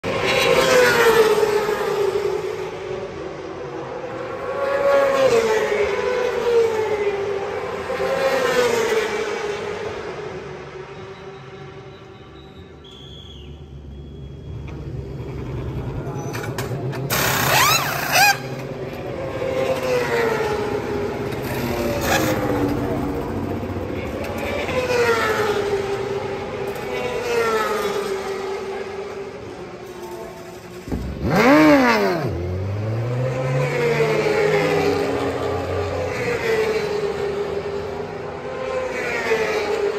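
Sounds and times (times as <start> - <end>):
motorcycles screaming past: 17.1 - 18.6, 21.4 - 23.6, 31.1 - 36.8
motorcycle engine revving: 19.6 - 25.7, 30.8 - 36.0.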